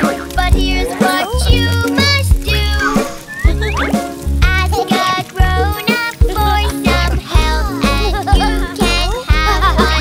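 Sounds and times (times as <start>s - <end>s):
bright backing track with bass beat: 0.0s - 10.0s
person singing: 0.0s - 10.0s.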